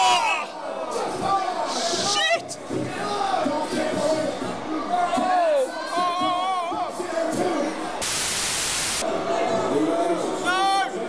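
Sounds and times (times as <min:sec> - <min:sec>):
loud static hiss: 0:07.9 - 0:09.2.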